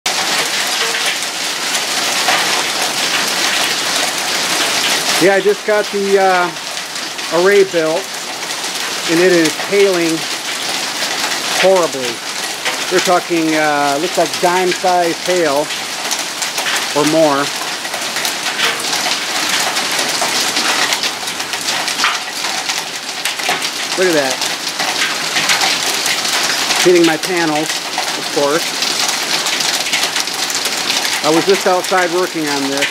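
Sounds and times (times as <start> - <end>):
hail clattering on solar panels: 0.1 - 32.9.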